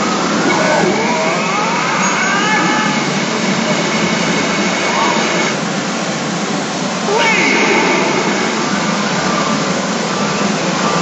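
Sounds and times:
loud steady din: 0:00.0 - 0:05.7, 0:06.9 - 0:11.0
gliding voice-like sounds: 0:00.4 - 0:05.6, 0:07.0 - 0:09.8
pachinko machine sound effects: 0:07.1 - 0:09.1.

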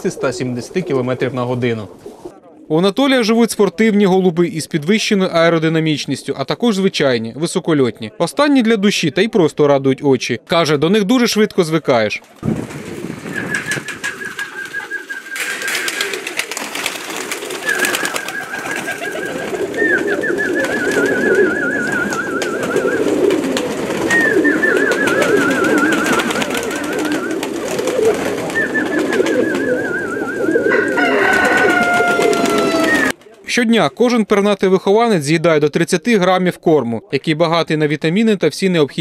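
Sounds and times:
pigeons cooing: 0:00.0 - 0:02.7, 0:13.1 - 0:33.2.

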